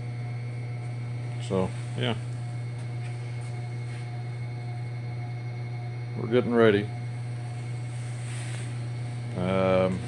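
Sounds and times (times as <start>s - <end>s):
faint high whine: 0.0s - 10.0s
steady low hum: 0.0s - 10.0s.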